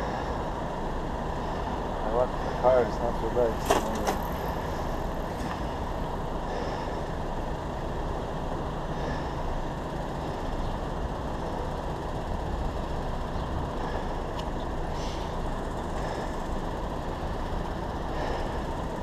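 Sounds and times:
low rumble of street traffic: 0.0s - 19.0s.

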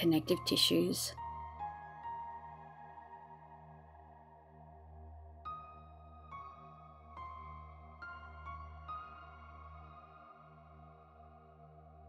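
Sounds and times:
ambient meditation music: 0.0s - 12.0s.

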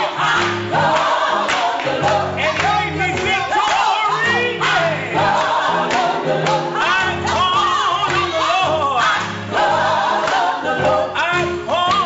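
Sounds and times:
group singing gospel song: 0.0s - 12.0s
instrumental backing: 0.0s - 12.0s.

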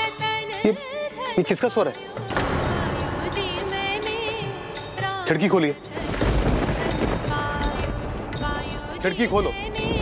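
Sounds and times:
deep low hit: 2.3s - 5.0s.

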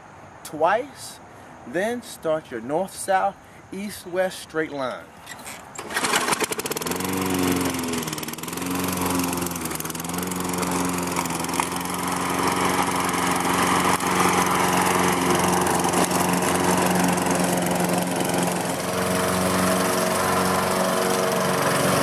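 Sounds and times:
lawn mower engine droning: 5.3s - 22.0s.

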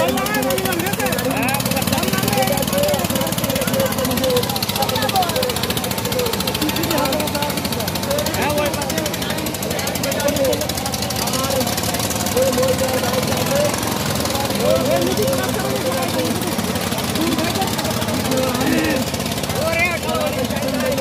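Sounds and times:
crowd shouting: 0.0s - 21.0s
diesel engines chugging: 0.0s - 21.0s.

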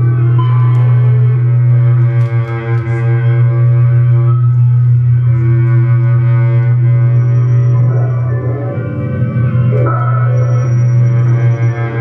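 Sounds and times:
low double bass drone: 0.0s - 12.0s.

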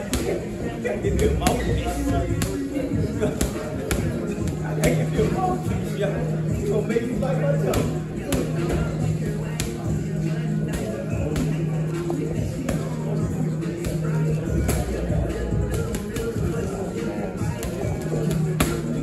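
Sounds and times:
music with bass line: 0.8s - 19.0s.

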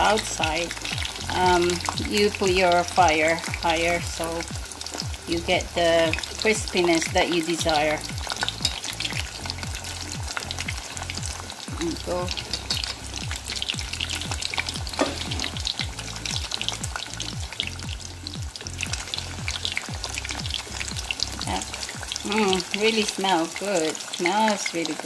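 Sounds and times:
chopsticks turning food in pot: 0.0s - 18.4s
fish sizzling in hot oil: 0.0s - 25.0s.

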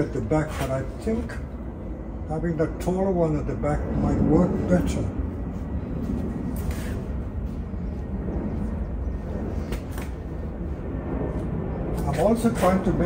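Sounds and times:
low background rumble and hiss: 0.0s - 13.0s.

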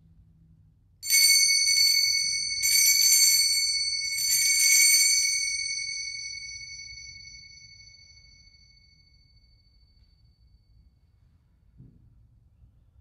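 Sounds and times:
altar bells jingling: 1.0s - 8.8s.

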